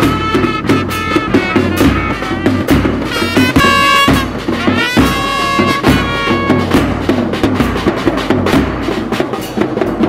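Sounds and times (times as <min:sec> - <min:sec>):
trumpet note: 0:00.0 - 0:07.0
brass melody: 0:00.0 - 0:09.5
drums beating steadily: 0:00.0 - 0:10.0.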